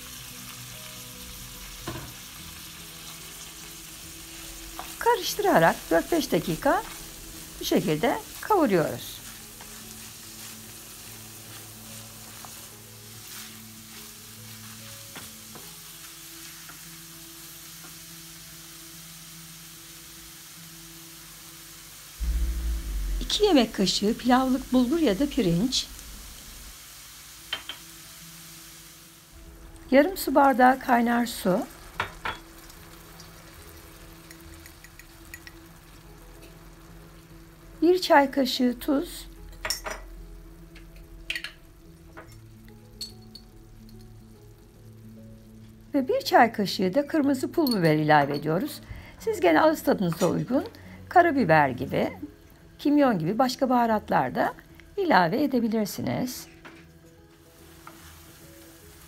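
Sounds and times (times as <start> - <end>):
vegetables sizzling in a frying pan: 0.0 - 22.2, 22.8 - 59.0
low steady hum: 22.2 - 26.8.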